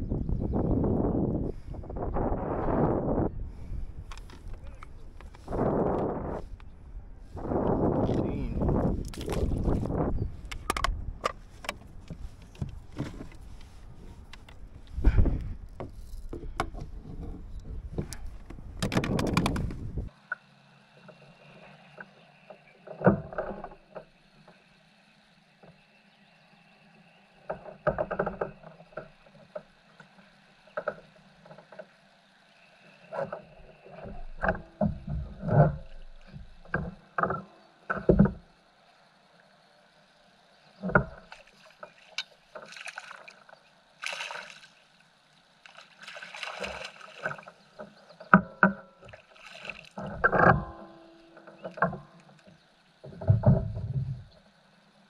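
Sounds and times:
kayak paddle strokes in water: 7.3 - 24.8, 40.0 - 54.7
fishing gear knocks and clicks: 9.0 - 20.1.

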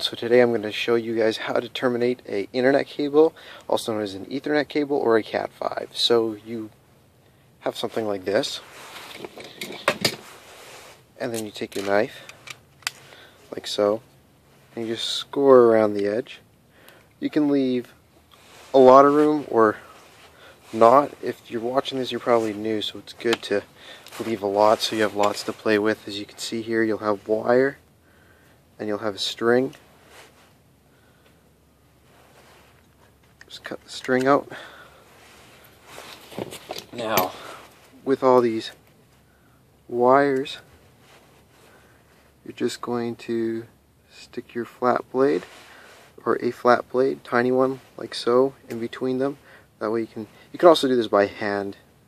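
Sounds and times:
soft rustling: 6.6 - 43.8, 44.4 - 51.8
handling rustling: 17.0 - 26.5, 32.0 - 38.1.

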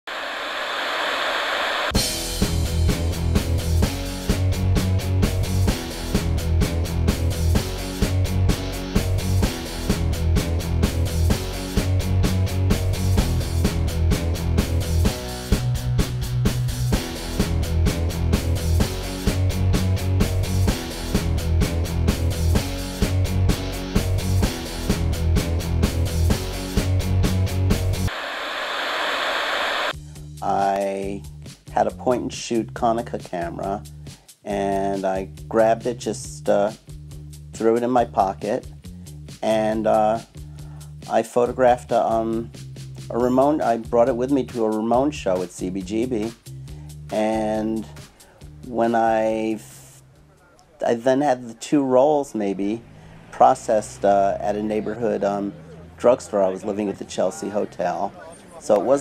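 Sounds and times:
television static hiss: 0.1 - 2.0, 28.1 - 29.9
rock song: 2.0 - 28.2.

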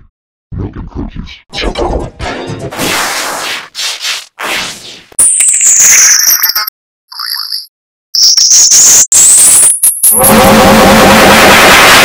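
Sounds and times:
high-pitched whine: 8.7 - 12.0
harsh noise with pulsing buzz: 10.1 - 12.0.

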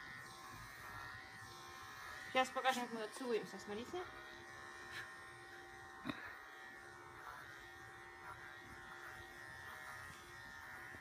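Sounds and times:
electric clippers humming: 0.0 - 11.0.

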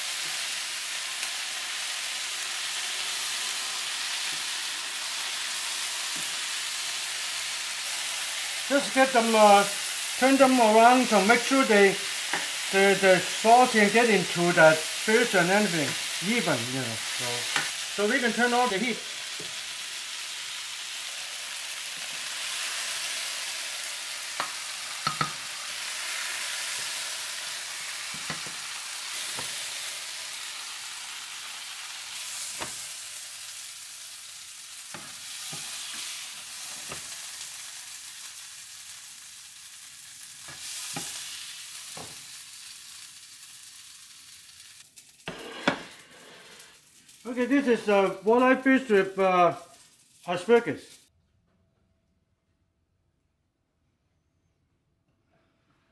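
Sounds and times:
food sizzling in frying pan: 0.0 - 51.1
spatula tapping pan: 24.4 - 25.4.

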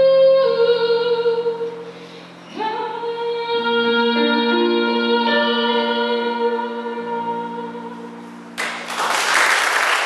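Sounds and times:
woman singing a long note: 2.6 - 8.3.

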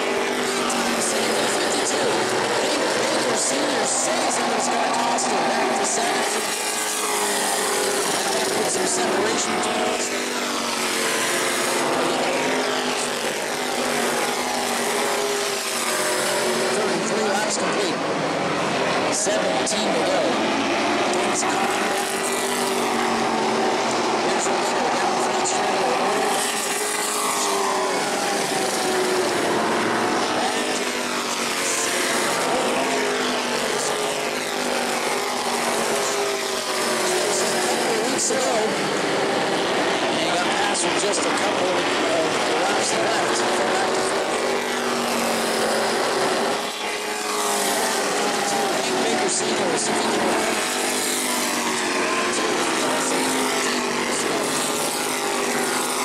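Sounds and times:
race car engines passing: 0.0 - 56.0.

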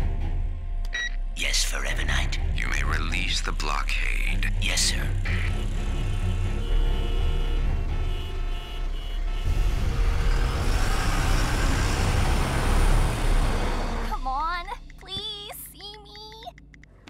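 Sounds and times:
car engines rumbling: 1.8 - 14.2
rushing traffic noise: 4.9 - 14.2.

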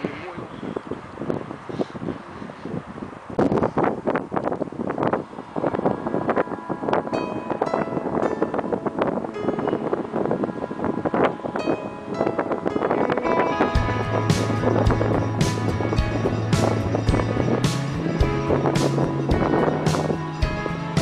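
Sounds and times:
wind buffeting microphone: 0.0 - 21.0
background music with a beat: 13.5 - 21.0.

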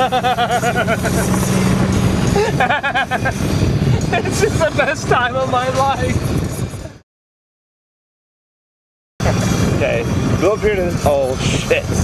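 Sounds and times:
golf cart running: 0.0 - 6.4.

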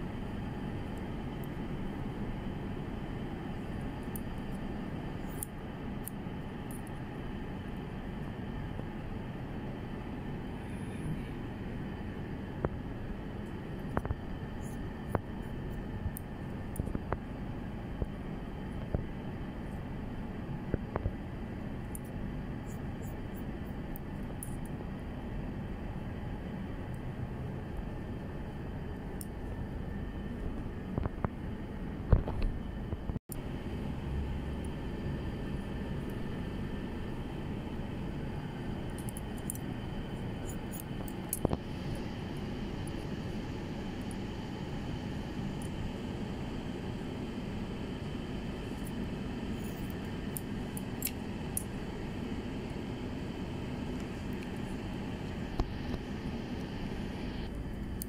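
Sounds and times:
steady background hum: 0.0 - 58.0.

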